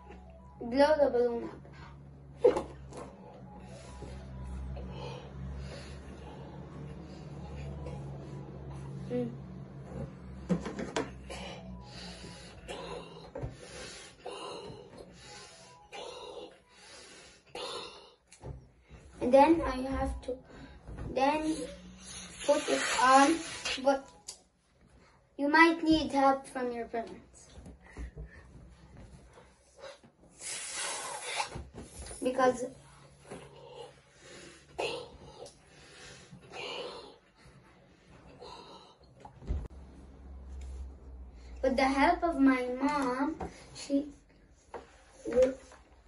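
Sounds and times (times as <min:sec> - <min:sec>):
air hissing from balloon: 0:21.9 - 0:23.9, 0:30.3 - 0:32.0
breathy puffs into balloon: 0:29.9 - 0:32.0.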